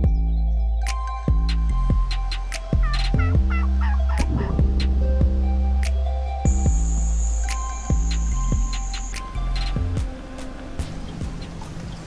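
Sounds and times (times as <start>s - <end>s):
percussive background music: 0.0s - 11.8s
turkey gobbling: 2.2s - 5.0s.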